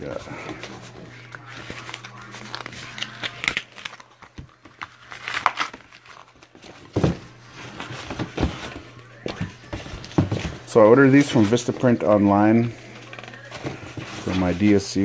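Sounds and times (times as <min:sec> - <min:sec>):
cardboard rustling and crinkling: 0:00.0 - 0:12.4, 0:13.0 - 0:15.0.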